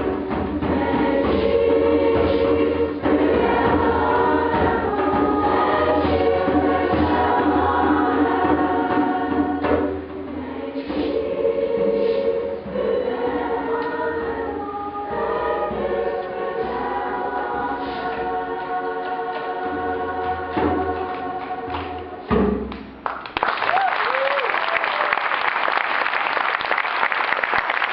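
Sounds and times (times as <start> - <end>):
children's choir singing: 0.0 - 22.7
audience applause: 23.0 - 27.9.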